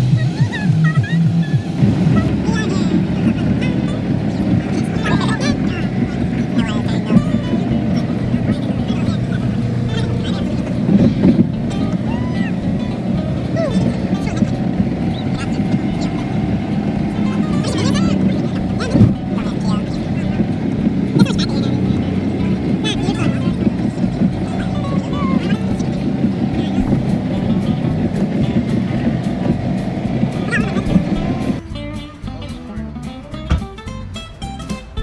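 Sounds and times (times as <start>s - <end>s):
car road and engine noise: 0.0s - 35.0s
indistinct voices: 0.0s - 35.0s
music: 0.0s - 35.0s.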